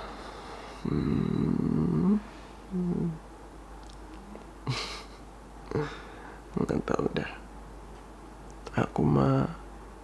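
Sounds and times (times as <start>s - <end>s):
man humming: 0.8s - 3.2s, 5.7s - 6.1s.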